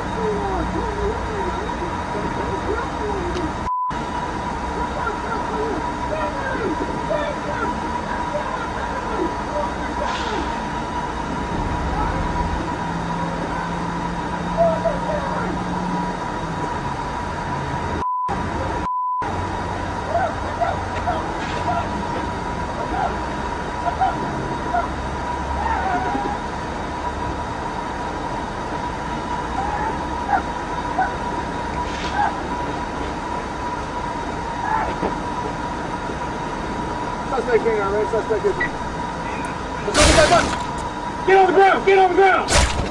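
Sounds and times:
constant high whine: 0.0s - 42.9s.

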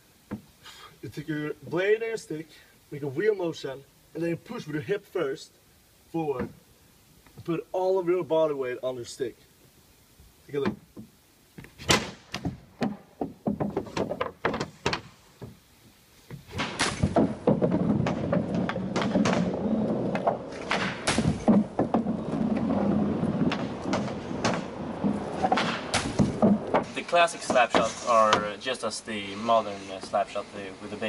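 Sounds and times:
hockey pucks knocking on plastic pad: 12.3s - 15.6s, 16.3s - 28.5s.

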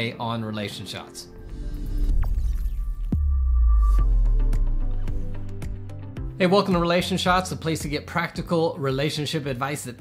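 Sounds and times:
deep bass drone: 1.4s - 6.4s
heavy low boom: 1.9s - 5.9s.

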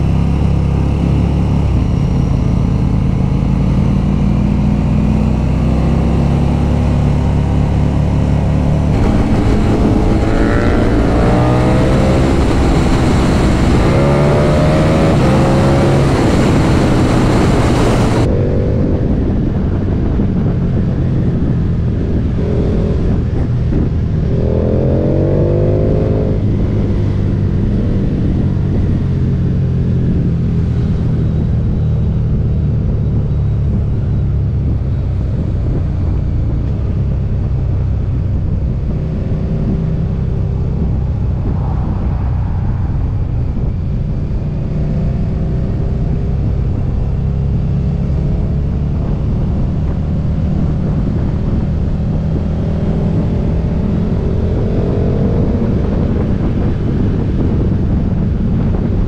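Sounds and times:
motorcycle engine running: 0.0s - 59.0s
road noise: 0.0s - 59.0s.

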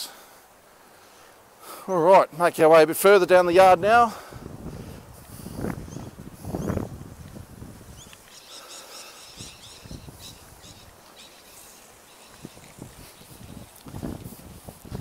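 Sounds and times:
wind hiss: 0.0s - 15.0s
small bird chirping: 5.9s - 6.9s, 7.9s - 13.7s.

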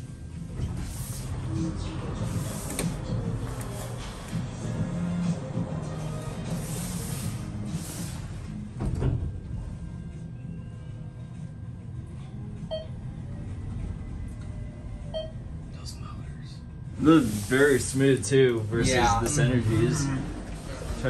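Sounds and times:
elevator doors sliding shut: 0.0s - 4.4s, 6.1s - 9.8s, 18.8s - 21.0s
elevator travel hum: 0.0s - 21.0s.

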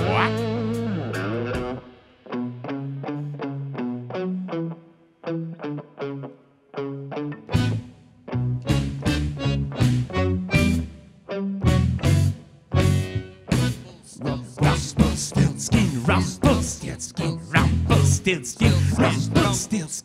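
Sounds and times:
bass and drums: 0.0s - 2.0s, 7.6s - 7.9s, 8.5s - 10.9s, 11.6s - 13.8s, 14.4s - 19.8s
electric guitar riff: 0.0s - 20.0s.

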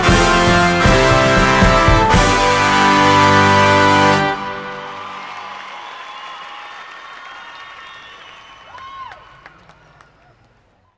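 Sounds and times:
crowd applauding and cheering: 0.2s - 10.9s
whistles: 5.2s - 10.3s.

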